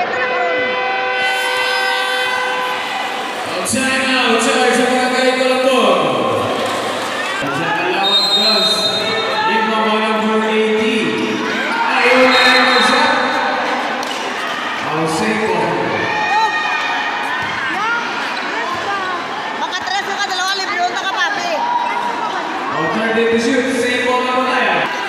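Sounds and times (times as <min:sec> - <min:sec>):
crowd voices and shouts: 0:00.0 - 0:25.0.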